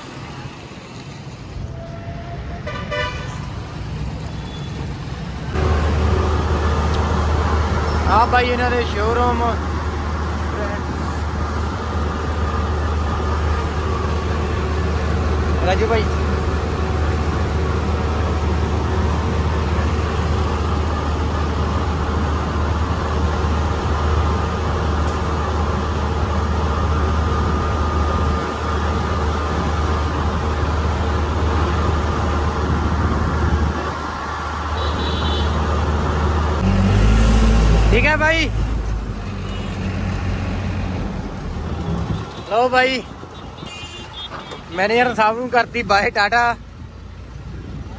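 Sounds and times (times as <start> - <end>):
diesel engine humming: 0.0 - 47.9
road and traffic noise: 0.0 - 47.9.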